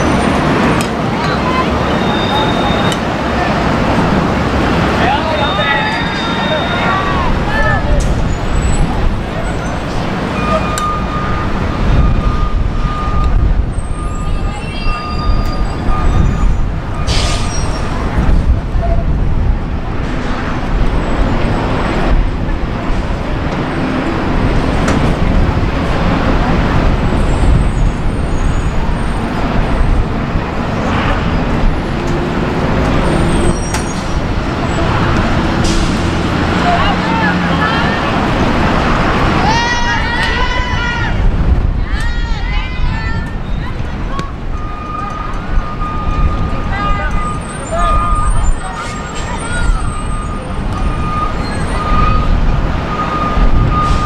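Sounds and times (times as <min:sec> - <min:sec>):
wind buffeting microphone: 0:07.1 - 0:54.0
distant voices calling out: 0:25.9 - 0:53.4.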